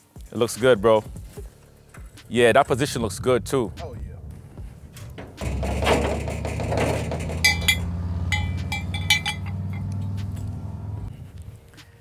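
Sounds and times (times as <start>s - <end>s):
motorcycle riding off: 5.4s - 11.2s
light metallic clinks: 7.2s - 10.5s.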